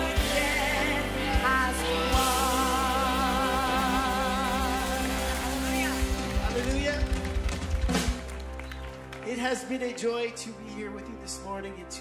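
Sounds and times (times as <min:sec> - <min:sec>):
live worship band playing: 0:00.0 - 0:12.0.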